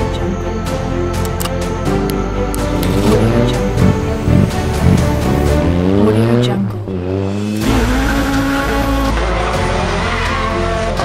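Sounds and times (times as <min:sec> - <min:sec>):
background music with deep bass: 0:00.0 - 0:11.0
car engine revving: 0:02.6 - 0:11.0.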